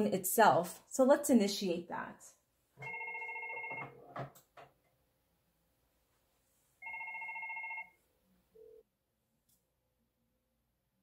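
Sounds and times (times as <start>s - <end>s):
desk phone ringing electronically: 2.8s - 4.1s, 6.8s - 8.0s.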